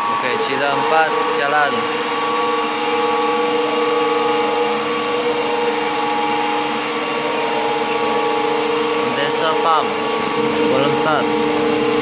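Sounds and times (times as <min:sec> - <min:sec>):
machinery humming with held tones: 0:00.0 - 0:12.0.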